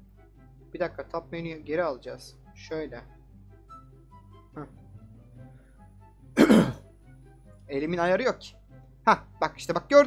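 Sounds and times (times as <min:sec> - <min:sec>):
faint background music: 0:00.0 - 0:10.0
man clearing throat: 0:06.4 - 0:06.8.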